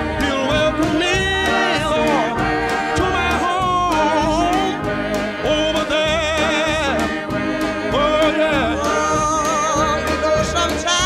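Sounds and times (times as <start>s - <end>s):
instrumental accompaniment: 0.0s - 11.0s
person singing with vibrato: 0.0s - 11.0s.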